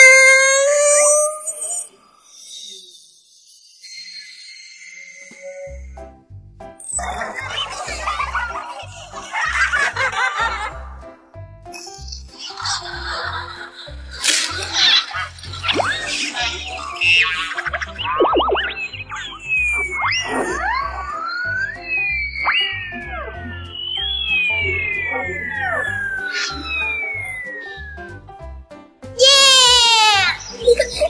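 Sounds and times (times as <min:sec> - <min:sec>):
cartoon hits: 0:00.0 - 0:01.9
long falling whistles: 0:00.0 - 0:05.9, 0:19.4 - 0:28.2
background music: 0:05.7 - 0:31.0
springy boing swoops: 0:18.0 - 0:21.0.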